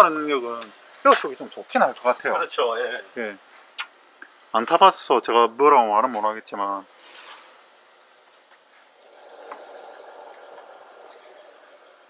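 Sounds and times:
faint background noise: 0.0s - 12.0s.

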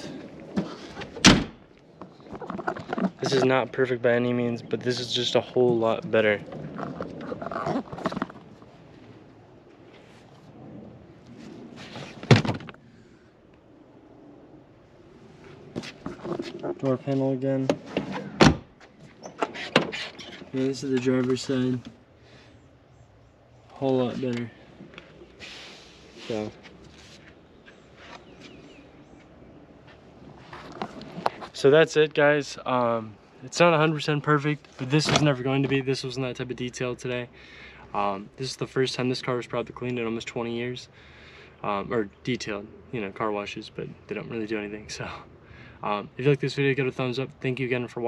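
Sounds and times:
sharp loud thunk: 12.3s - 12.7s
rustling handling noise: 23.8s - 31.7s.

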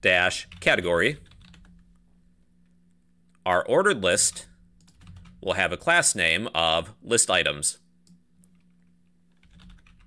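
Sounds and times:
steady low hum: 0.0s - 10.0s
keyboard typing: 1.2s - 1.8s, 4.8s - 5.4s, 9.3s - 10.0s.

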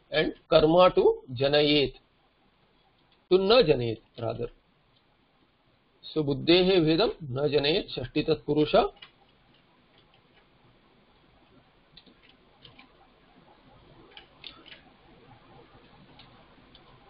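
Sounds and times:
low room hiss: 0.0s - 17.0s
computer keyboard typing: 8.9s - 10.5s, 11.9s - 17.0s.

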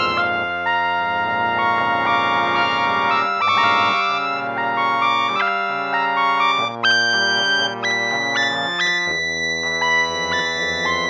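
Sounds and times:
trumpet: 0.0s - 9.2s
piano chords: 0.0s - 11.0s.

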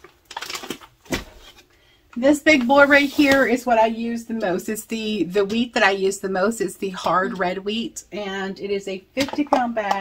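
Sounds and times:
paper bags rustling: 0.0s - 1.7s, 2.4s - 3.7s.

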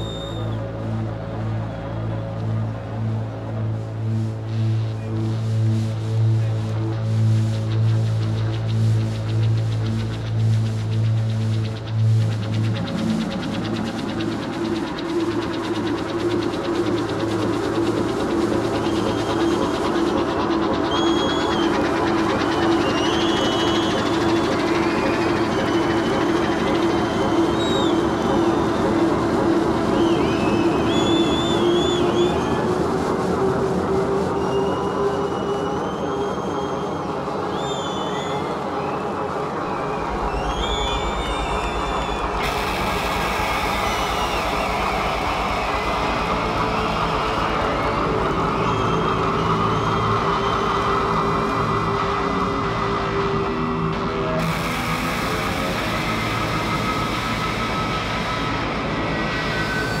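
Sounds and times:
effects-laden guitar: 0.0s - 34.9s, 39.0s - 60.0s
low pulsing beat: 0.0s - 35.1s, 39.7s - 60.0s
synth drone with siren-like glides: 0.0s - 60.0s.

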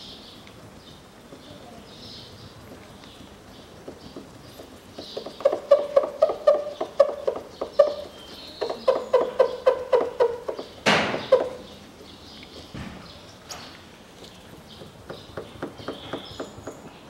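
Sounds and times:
rag squeaking on car paint: 5.1s - 11.7s.

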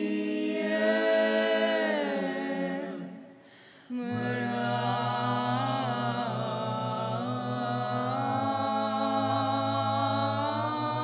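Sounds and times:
group singing a cappella: 0.0s - 11.0s.

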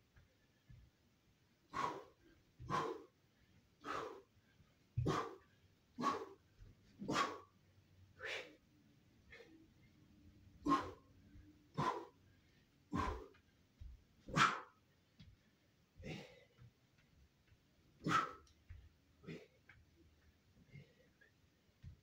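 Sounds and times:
sharp forceful exhalations: 1.7s - 2.1s.

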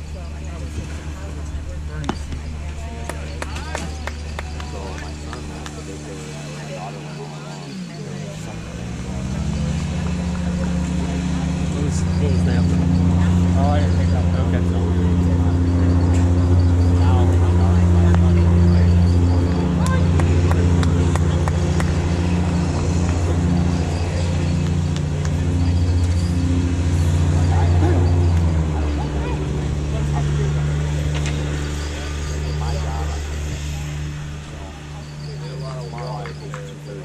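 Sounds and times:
faint voices: 0.0s - 37.0s
vehicle engine running: 0.0s - 37.0s.

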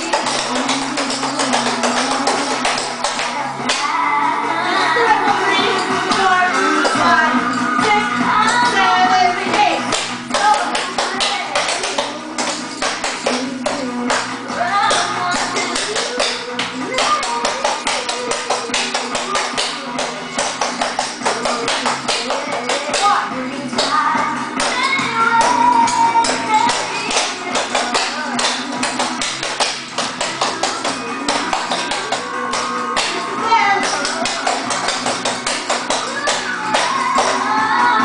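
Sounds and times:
tap shoes on hard floor: 0.0s - 3.9s, 9.5s - 23.2s, 24.6s - 33.2s, 33.8s - 37.4s
music playing: 0.0s - 38.0s.

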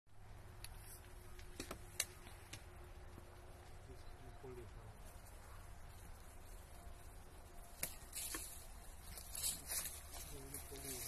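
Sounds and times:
pruning shears snipping twigs: 7.7s - 11.0s.

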